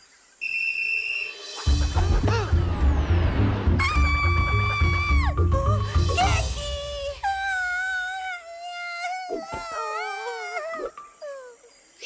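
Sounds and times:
background music: 1.4 - 7.8.

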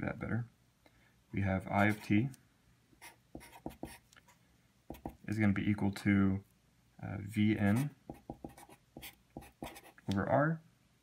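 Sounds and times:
marker scratching on paper: 1.8 - 2.2, 3.0 - 4.1, 4.9 - 5.2, 7.6 - 10.1.

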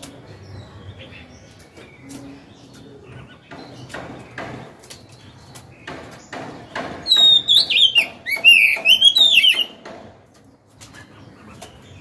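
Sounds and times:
bird singing whistled phrases: 7.1 - 9.7.

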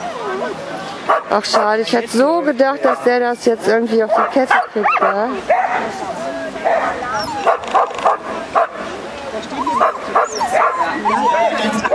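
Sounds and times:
voices: 0.0 - 11.9
dog barking excitedly: 1.1 - 1.7, 4.1 - 5.8, 6.6 - 8.8
dog yelping and whining: 7.0 - 8.0, 9.5 - 11.9.

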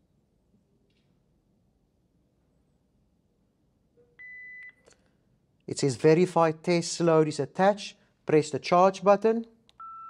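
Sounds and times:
defibrillator high-pitched beep: 9.8 - 10.0.

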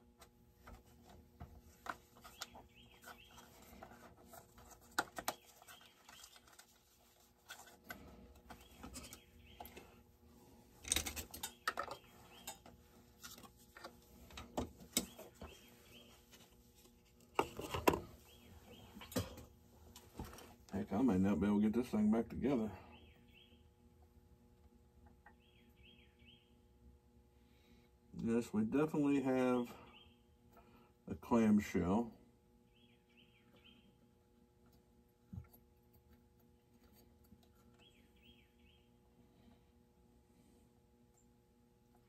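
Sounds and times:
clicks and clinks of parts: 10.8 - 15.2.

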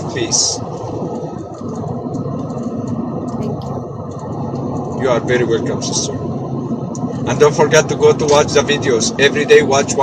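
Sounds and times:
low rumbling line noise: 0.0 - 10.0.

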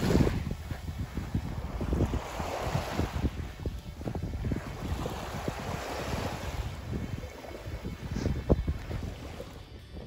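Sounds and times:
small waves washing on shore: 0.0 - 9.9
wind buffeting microphone: 0.0 - 10.0.

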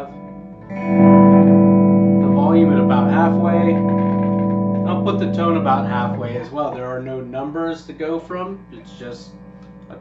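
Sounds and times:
electric guitar chord ringing: 0.0 - 10.0
man talking: 2.2 - 10.0.

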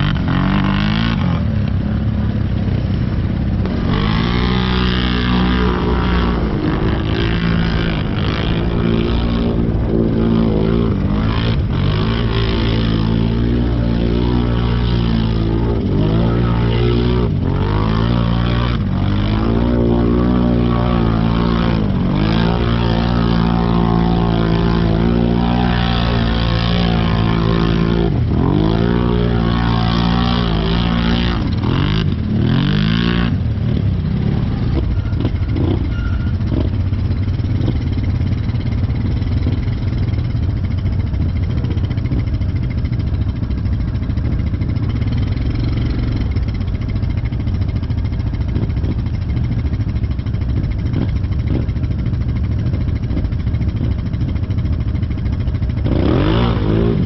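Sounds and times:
atv engine revving: 0.0 - 57.0.

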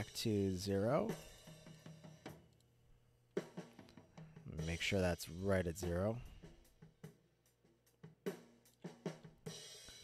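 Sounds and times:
faint drum and cymbal hits: 0.0 - 2.5, 3.4 - 10.0.

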